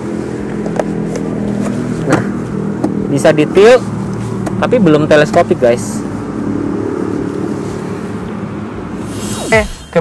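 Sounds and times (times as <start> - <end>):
air conditioning: 0.0 - 10.0.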